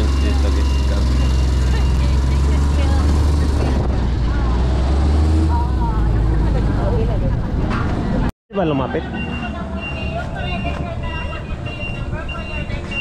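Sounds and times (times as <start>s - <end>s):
vehicle engine humming: 0.0s - 13.0s.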